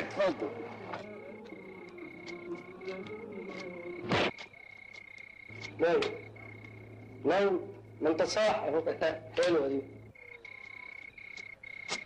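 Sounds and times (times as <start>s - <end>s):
frogs or insects trilling: 0.0s - 12.0s.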